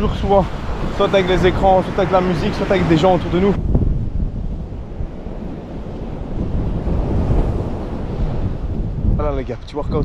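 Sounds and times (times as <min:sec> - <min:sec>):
small waves breaking on beach: 0:00.0 - 0:03.8, 0:04.4 - 0:09.0
wind buffeting microphone: 0:00.0 - 0:10.0.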